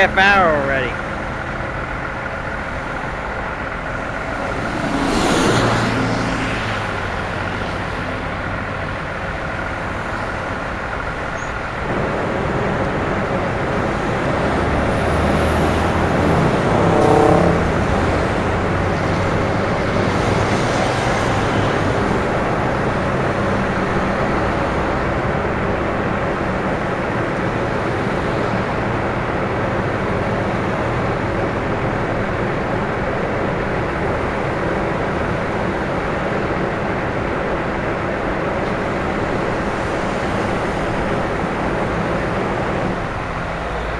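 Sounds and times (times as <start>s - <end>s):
road noise: 0.0s - 43.9s
vehicle engines idling: 0.0s - 43.9s
brief pitched tone: 16.2s - 18.2s.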